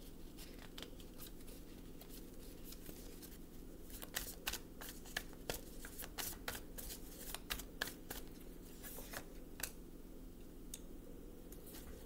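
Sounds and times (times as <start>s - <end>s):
cards being shuffled: 0.4s - 9.8s.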